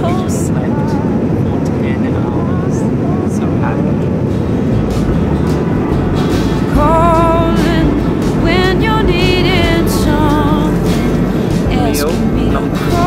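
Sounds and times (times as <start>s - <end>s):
airliner cabin engine roar: 0.0s - 13.0s.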